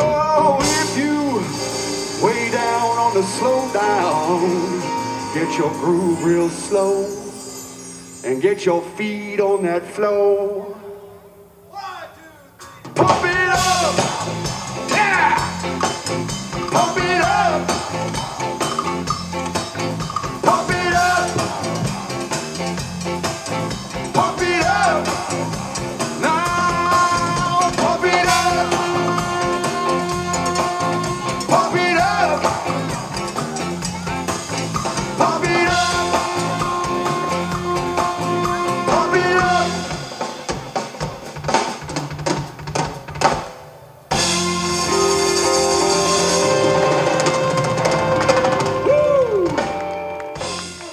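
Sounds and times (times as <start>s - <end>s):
drum kit and percussion hits: 0.0s - 5.7s, 12.6s - 50.9s
person singing: 0.0s - 7.6s, 16.7s - 18.1s, 20.4s - 21.9s, 24.0s - 40.1s
live band playing upbeat groove: 0.0s - 8.2s, 12.6s - 50.9s.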